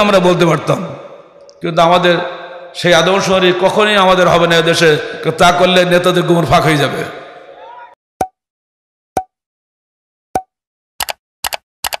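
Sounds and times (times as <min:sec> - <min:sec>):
quick double clicks: 0:11.0 - 0:12.0.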